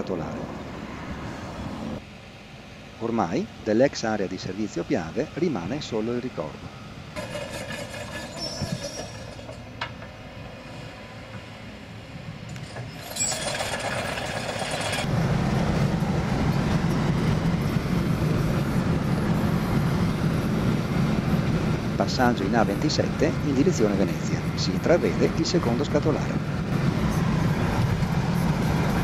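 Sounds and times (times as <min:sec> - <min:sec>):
outdoor ambience: 0:00.0 - 0:29.0
road and tyre noise inside car: 0:08.4 - 0:29.0.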